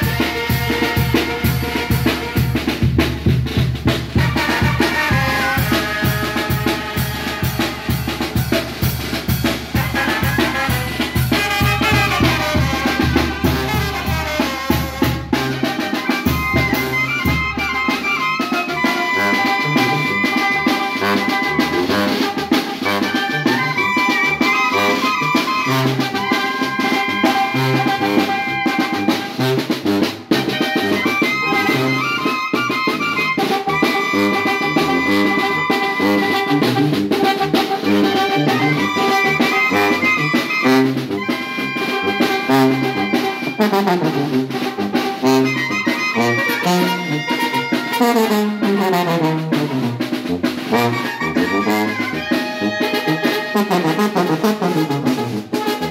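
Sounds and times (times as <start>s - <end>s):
drum kit with cymbals: 0.0s - 55.9s
trombone: 0.0s - 55.9s
trumpets: 0.0s - 55.9s.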